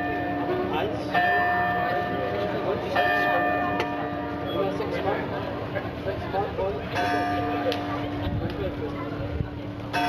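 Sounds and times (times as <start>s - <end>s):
church bell tolling: 0.0s - 4.9s, 6.8s - 8.2s
crowd chatter: 0.0s - 10.0s.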